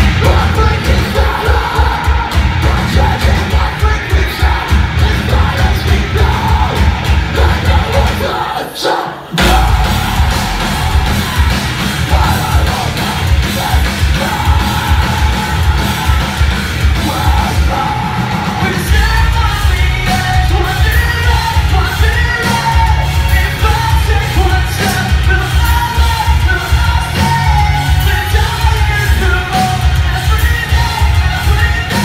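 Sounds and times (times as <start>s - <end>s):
distorted guitars: 0.0s - 32.0s
person singing into a microphone: 0.0s - 32.0s
fast pounding kick drum: 9.4s - 17.6s.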